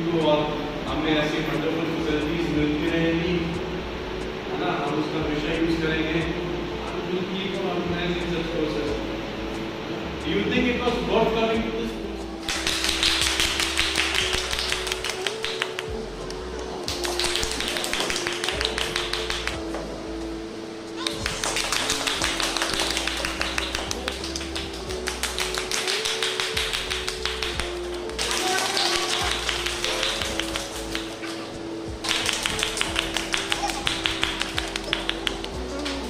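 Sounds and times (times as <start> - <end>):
music with slow held melody: 0.0 - 36.0
people clapping: 12.5 - 19.7, 21.0 - 36.0.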